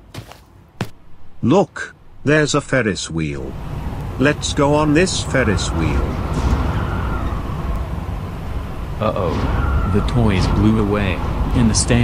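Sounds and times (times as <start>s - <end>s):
strong wind rushing: 3.5s - 12.0s.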